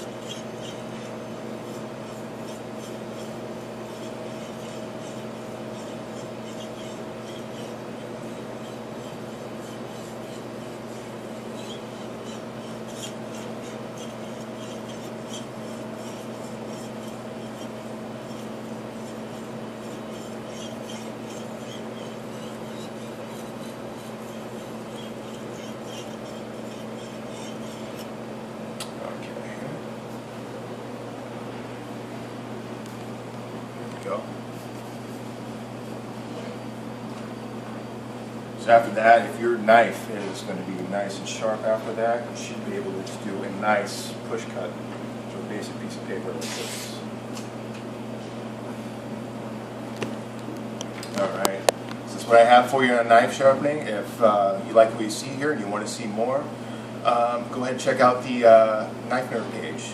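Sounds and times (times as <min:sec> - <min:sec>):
knife scraping on whetstone: 0:00.0 - 0:28.2
kitchen equipment hum: 0:00.0 - 0:59.9.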